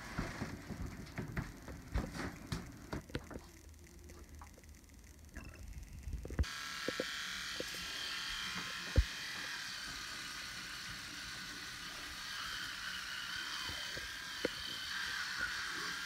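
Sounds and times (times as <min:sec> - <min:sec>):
electric toothbrush buzzing: 0:06.3 - 0:16.0.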